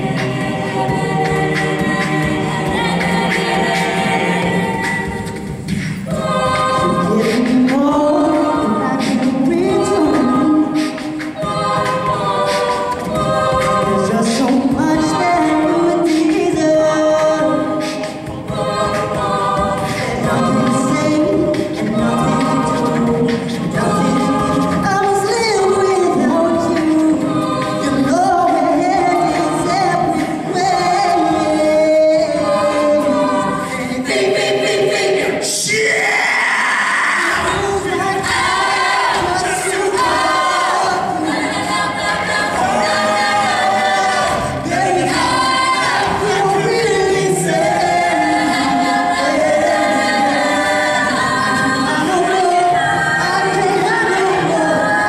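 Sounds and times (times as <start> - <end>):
a cappella group singing: 0.0 - 55.0.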